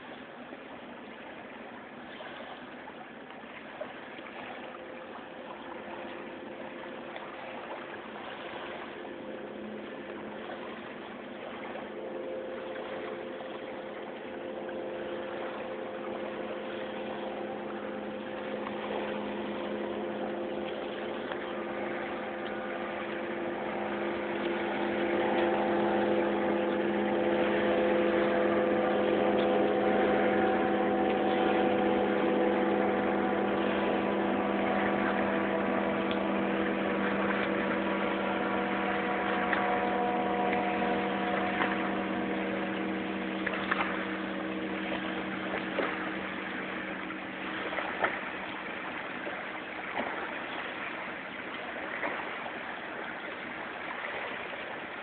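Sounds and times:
engine droning hum: 0.0s - 55.0s.

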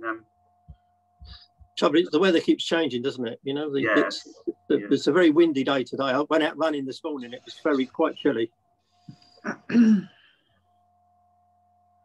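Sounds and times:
faint steady electronic tone: 0.0s - 12.0s
person speaking: 1.8s - 8.5s.

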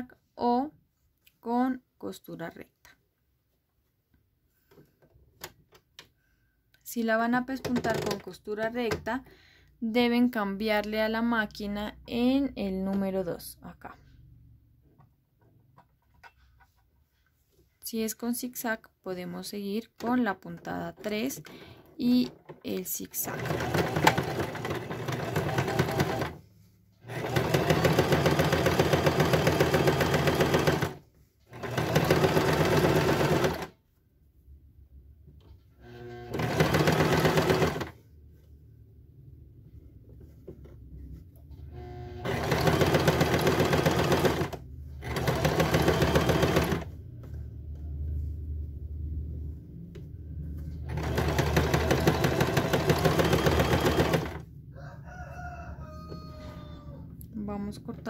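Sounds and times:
sewing machine stitching: 7.6s - 9.1s, 20.0s - 26.4s, 27.0s - 33.8s, 35.8s - 38.0s, 41.6s - 47.0s, 50.8s - 54.5s.

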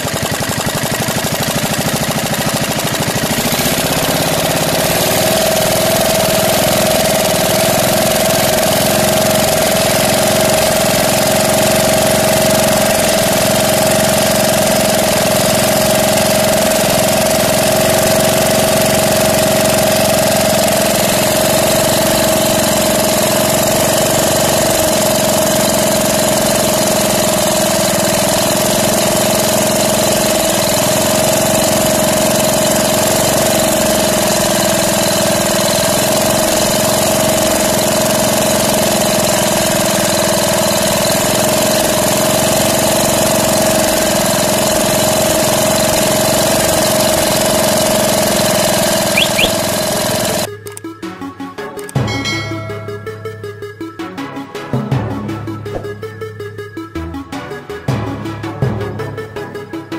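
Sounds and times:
diesel engine idling: 0.0s - 50.8s
steady whine: 52.0s - 54.0s.

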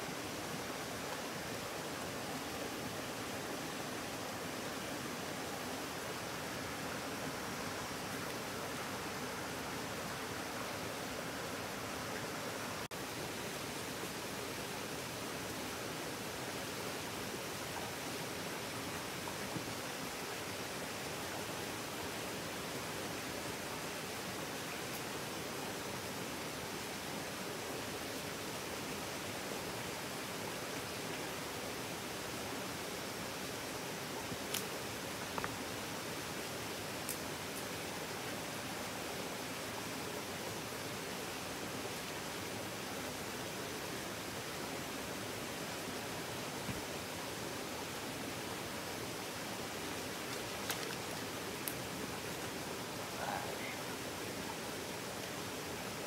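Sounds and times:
stream water rushing: 0.0s - 56.0s.

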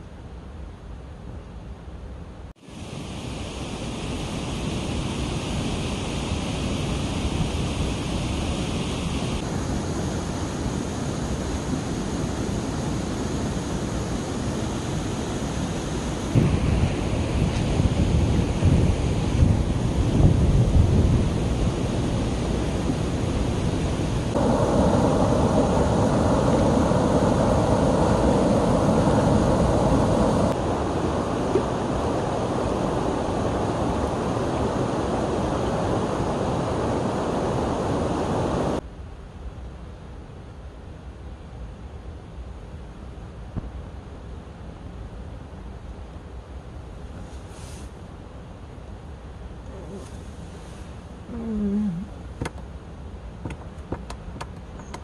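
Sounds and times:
wind buffeting microphone: 16.2s - 38.8s.

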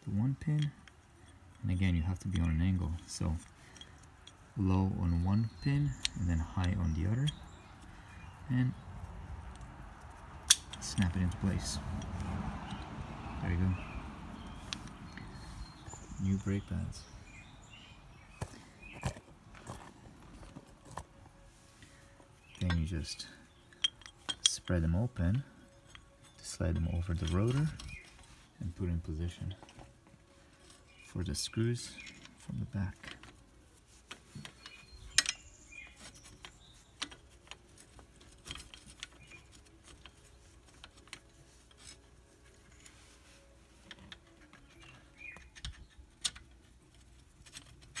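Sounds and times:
metal parts tapping together: 0.4s - 7.6s, 9.5s - 12.8s, 22.5s - 28.3s, 34.1s - 42.9s, 43.8s - 48.0s
metallic clicks of brake caliper: 23.5s - 24.8s.

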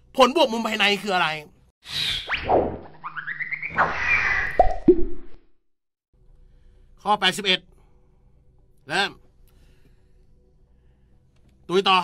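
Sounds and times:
cartoon swish: 1.9s - 5.4s
rising chirpy blips: 2.1s - 5.4s.

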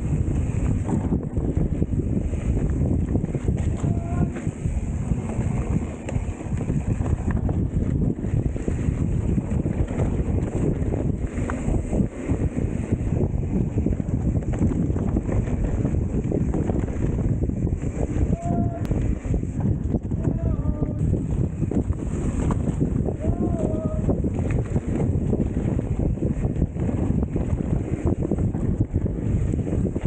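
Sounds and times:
mountain bike rattling on dirt trail: 0.0s - 30.0s
wind buffeting microphone: 0.0s - 30.0s.

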